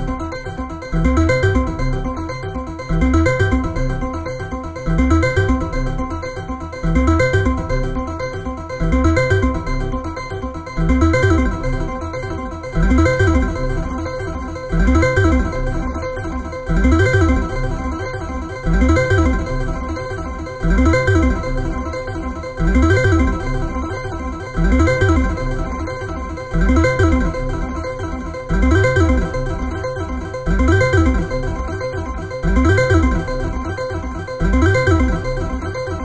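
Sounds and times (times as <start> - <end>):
synthesizer note pattern: 10.8 - 36.0.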